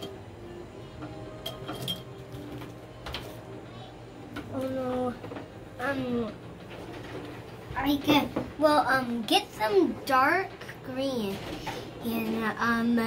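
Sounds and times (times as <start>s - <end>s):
child's voice: 3.6s - 6.4s, 7.7s - 13.0s.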